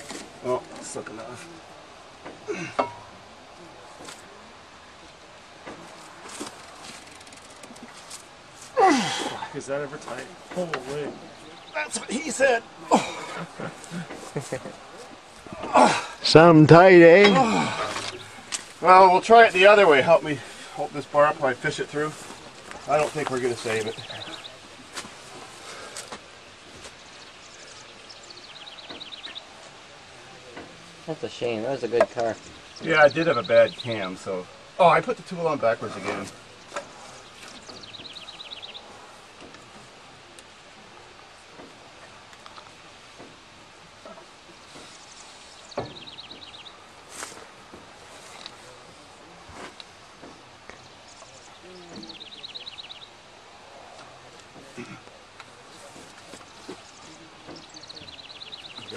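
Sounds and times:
quiet outdoor background noise: 0.0s - 58.9s
songbird trill: 9.3s - 15.2s, 16.5s - 40.6s, 44.0s - 47.4s, 48.2s - 58.9s
songbird trilling: 27.0s - 29.5s, 36.6s - 38.9s, 44.8s - 46.8s, 50.8s - 53.2s, 56.7s - 58.9s.

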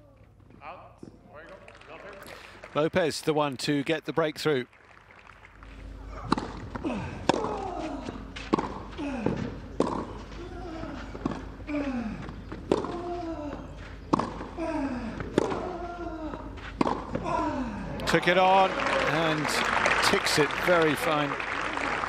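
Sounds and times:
racquet hitting ball: 6.2s - 10.3s, 12.4s - 13.1s, 14.0s - 14.6s, 15.2s - 15.7s, 16.8s - 17.2s
player grunting: 17.2s - 18.1s.

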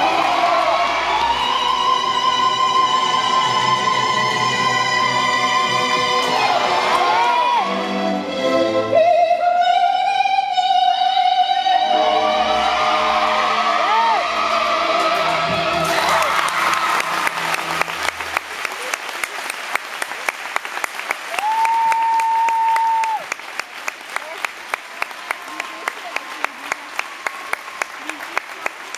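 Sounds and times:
audience applause: 0.0s - 2.2s, 13.8s - 28.9s
operatic music: 0.0s - 18.9s
rhythmic clapping: 14.9s - 28.9s.

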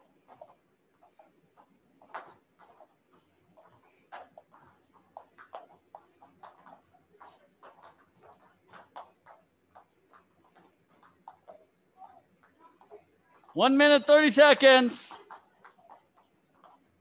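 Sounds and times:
jump ropes slapping floor: 0.0s - 13.6s.

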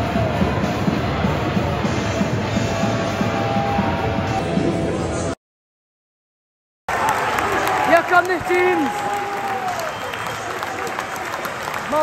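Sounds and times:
stadium crowd clapping and cheering: 6.9s - 12.0s.

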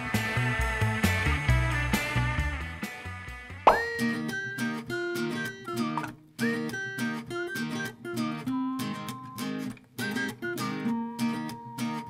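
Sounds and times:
rising pop sound effect: 3.7s - 4.0s
light plucked tune: 3.7s - 12.0s.

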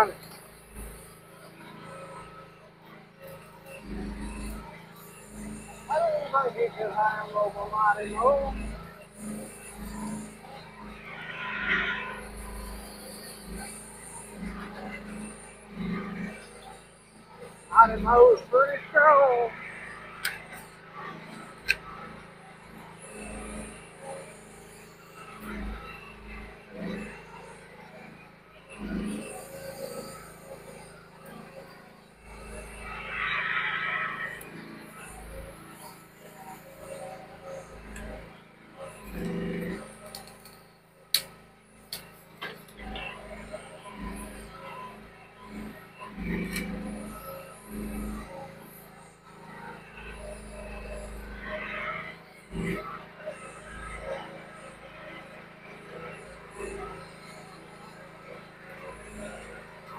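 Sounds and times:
excavator engine running: 0.0s - 54.8s.

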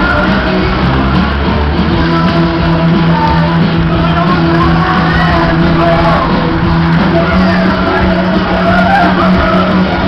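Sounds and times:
loud music: 0.0s - 10.0s
ride cars rumbling: 4.0s - 9.8s.

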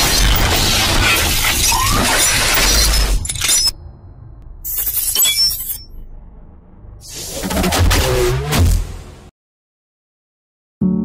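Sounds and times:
high glassy tinkling: 5.0s - 6.0s.

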